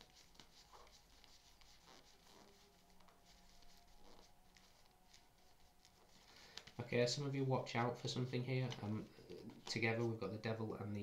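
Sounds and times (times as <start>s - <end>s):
cards rustling and clicking: 0.0s - 6.8s.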